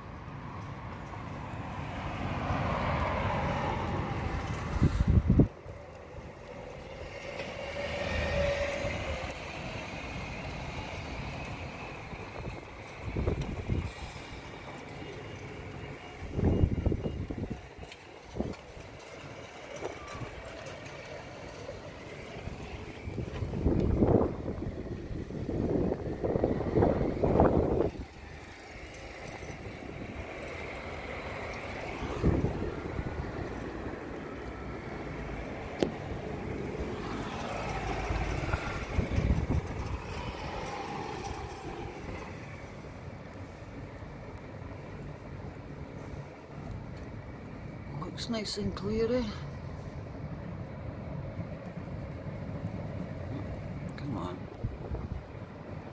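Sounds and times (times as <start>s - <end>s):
outdoor background rumble: 0.0s - 55.9s.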